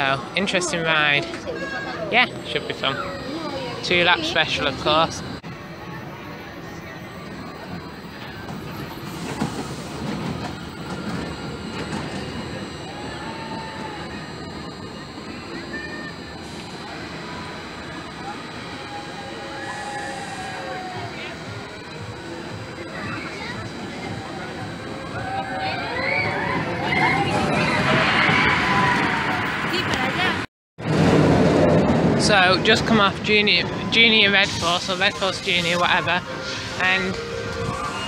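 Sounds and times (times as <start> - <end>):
people's voices: 0.0 - 30.5, 32.1 - 38.0
roller coaster wheels rumbling on rails: 0.0 - 38.0.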